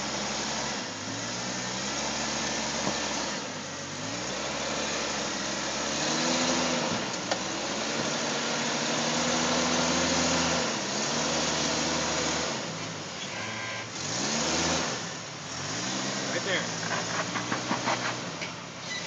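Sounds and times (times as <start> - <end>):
engine running at low revs: 0.0 - 18.5.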